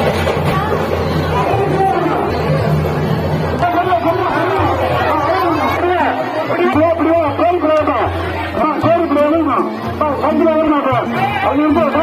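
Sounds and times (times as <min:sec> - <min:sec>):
overlapping voices chattering: 0:00.0 - 0:12.0.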